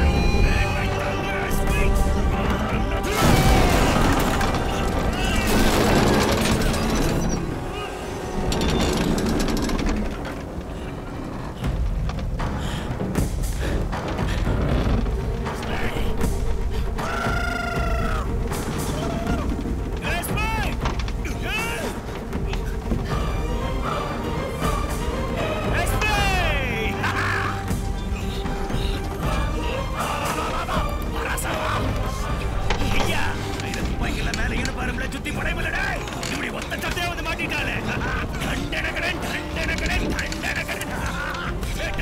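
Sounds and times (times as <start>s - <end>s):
crackles and clicks: 0.0s - 23.1s, 25.7s - 42.0s
dramatic film score: 0.0s - 42.0s.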